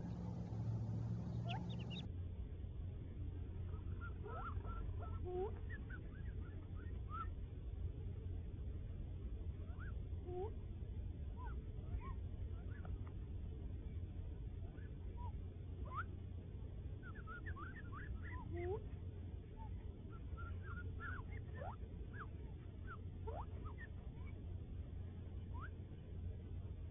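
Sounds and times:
quail chicks peeping: 0.0s - 2.1s, 3.5s - 7.4s, 14.0s - 26.0s
low rumble: 0.0s - 26.9s.

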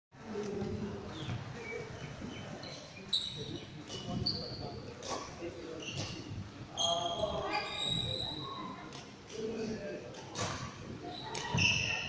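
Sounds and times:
sports shoes squeaking: 0.4s - 8.8s, 10.4s - 12.0s.

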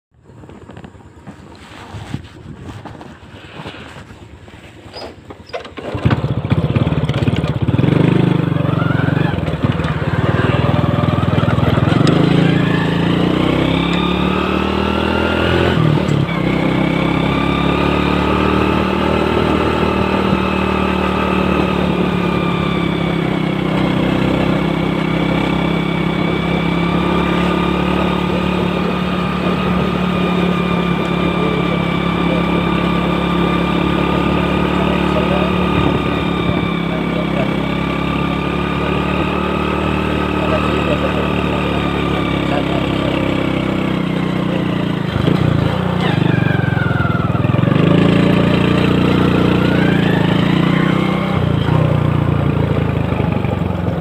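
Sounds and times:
motorcycle engine accelerating: 0.1s - 54.0s.

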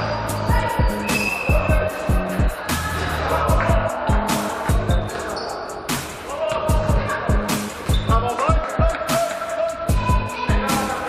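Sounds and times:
background music with beat and bass: 0.0s - 11.0s.

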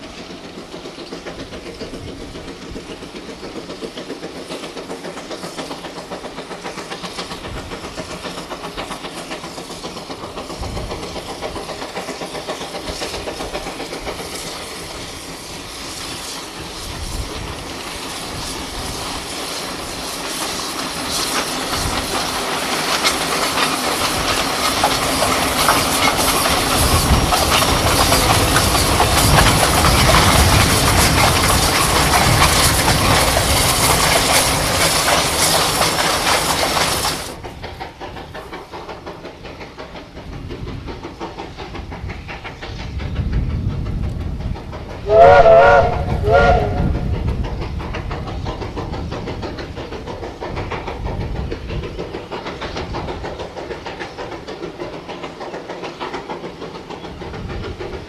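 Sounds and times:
steam locomotive exhaust beat: 0.0s - 58.0s
steam whistle blasts: 45.0s - 47.0s.

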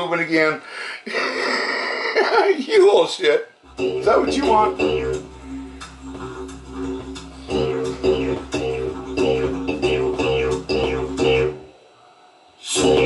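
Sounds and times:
didgeridoo music from tv: 3.6s - 12.0s, 12.6s - 13.0s.

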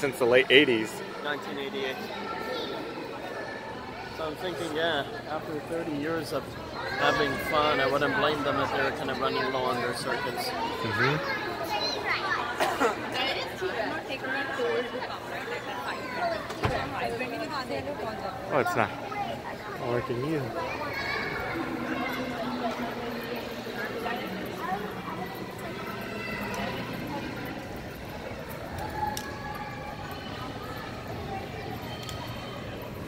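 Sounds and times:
people chattering: 0.0s - 33.0s.

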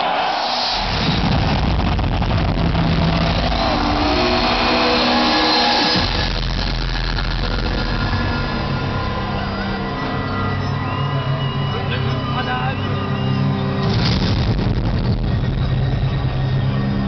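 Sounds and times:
synth music over sound system: 0.0s - 17.0s.

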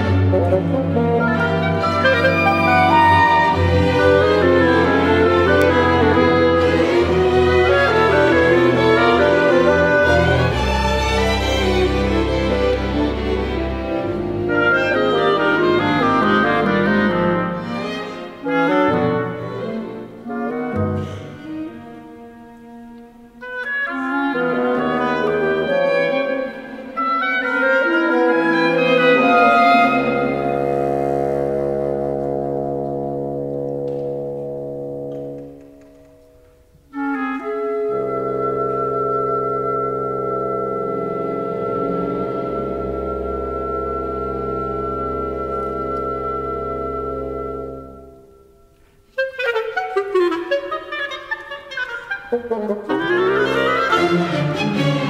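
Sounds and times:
woodwind trio with string orchestra: 0.0s - 55.0s.

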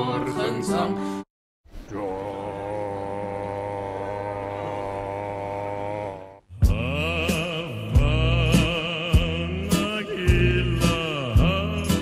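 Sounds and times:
man singing a low note: 1.9s - 12.0s.

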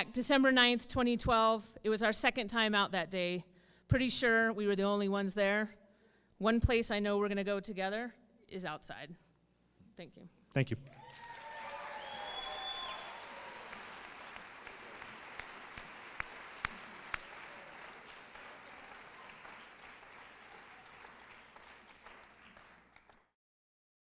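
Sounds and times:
audience cheering: 10.9s - 23.2s
audience applauding: 11.0s - 23.3s.

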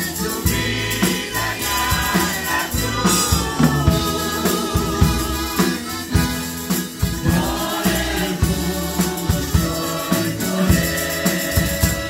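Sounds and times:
accordion: 0.0s - 12.0s
congregation singing worship song: 0.0s - 12.0s.

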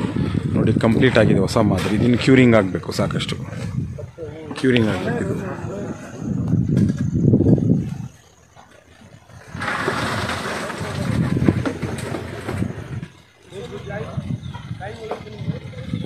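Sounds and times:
indistinct talking: 0.0s - 16.0s.

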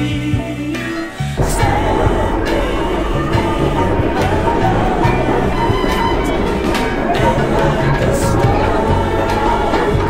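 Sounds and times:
subway train rumbling and rattling: 0.0s - 10.0s.

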